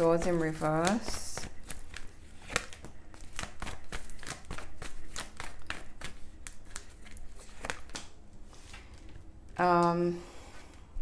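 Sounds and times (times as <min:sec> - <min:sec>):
cards being shuffled: 0:00.0 - 0:09.8.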